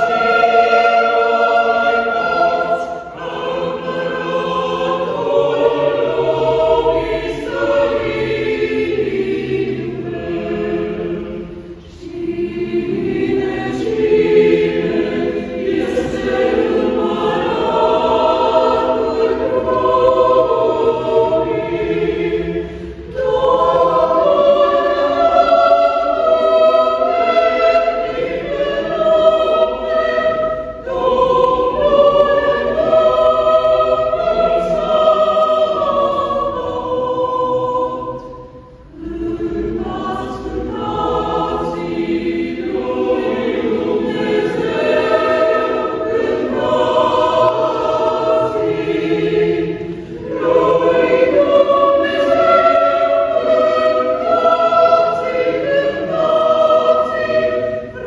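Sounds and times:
mixed choir singing sacred music: 0:00.0 - 0:58.0.

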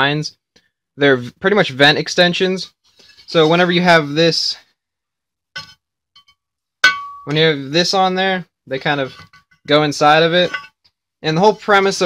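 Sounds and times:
metallic clinks: 0:05.6 - 0:07.3
sharp ringing metallic clink: 0:05.6 - 0:07.3.

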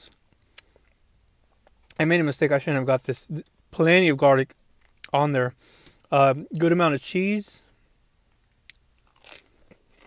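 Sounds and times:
person chewing food: 0:08.4 - 0:10.0.

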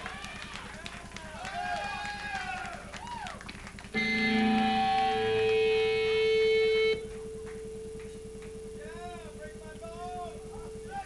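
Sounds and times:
live band chord: 0:04.0 - 0:10.8
single held tone: 0:04.0 - 0:11.0.

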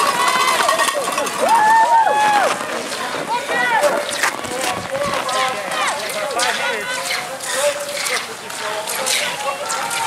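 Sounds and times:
spectators shouting and cheering: 0:00.0 - 0:07.8, 0:09.0 - 0:10.0
skis and poles clicking on snow: 0:00.0 - 0:10.0.

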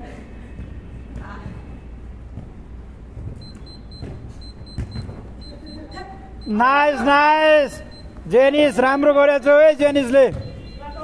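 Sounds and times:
ball kicked dull thuds: 0:00.6 - 0:05.4, 0:10.3 - 0:10.8.

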